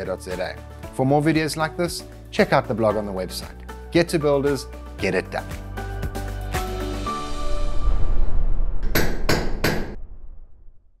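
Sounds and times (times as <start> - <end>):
sharp percussive knocks: 8.8 - 10.0.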